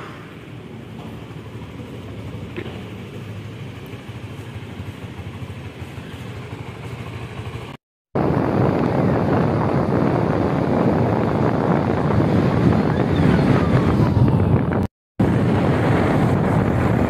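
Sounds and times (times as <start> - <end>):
motorcycle engines running: 0.0 - 17.0
street traffic: 0.0 - 17.0
wind rushing: 8.2 - 17.0.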